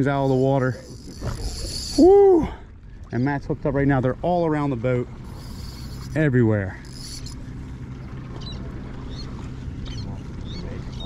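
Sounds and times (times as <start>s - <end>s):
boat motor humming: 0.0s - 11.0s.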